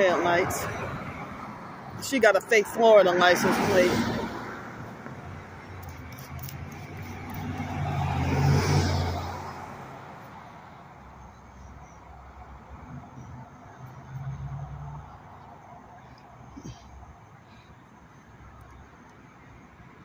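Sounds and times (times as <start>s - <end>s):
car passing: 0.0s - 19.8s
low hum of vehicle: 0.0s - 20.0s.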